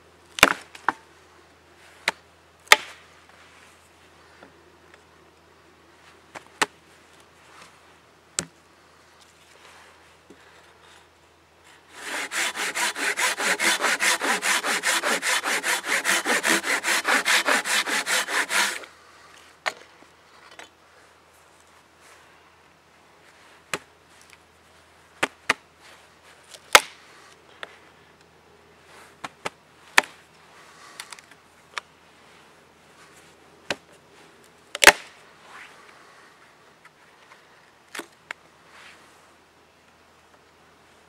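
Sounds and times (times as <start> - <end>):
blade striking a dry log: 0.4 - 1.0, 2.1 - 3.0, 8.4 - 8.6, 12.0 - 18.9, 26.7 - 27.0, 34.7 - 35.1.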